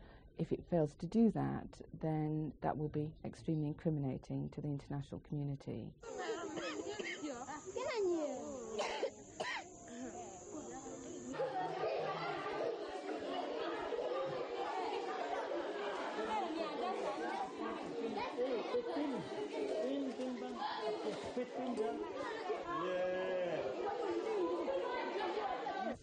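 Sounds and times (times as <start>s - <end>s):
crowd chatter: 6.0s - 26.0s
person coughing: 8.8s - 9.6s.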